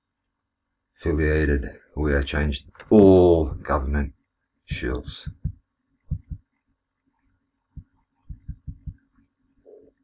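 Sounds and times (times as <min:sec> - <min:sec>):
faint steady hum: 0:00.0 - 0:10.0
faint mid-pitched sound: 0:04.7 - 0:06.5, 0:07.7 - 0:10.0
soft low thumps: 0:04.7 - 0:06.5, 0:07.7 - 0:09.1.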